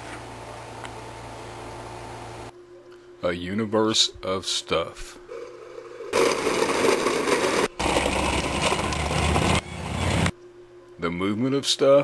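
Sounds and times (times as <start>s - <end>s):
plastic wheels rolling on concrete: 5.3s - 10.3s.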